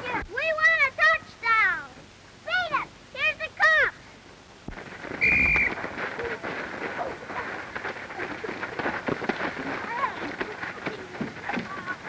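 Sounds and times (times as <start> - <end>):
high whistle-like tone: 5.2 - 5.8.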